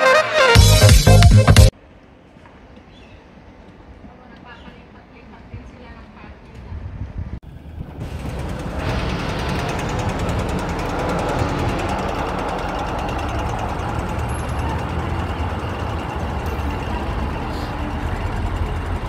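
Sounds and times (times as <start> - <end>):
cars passing: 7.4 - 19.0
tram passing: 7.4 - 19.0.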